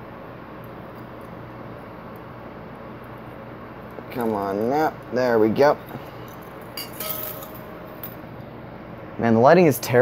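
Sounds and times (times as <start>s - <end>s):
metallic clinks of hardware: 5.8s - 8.3s.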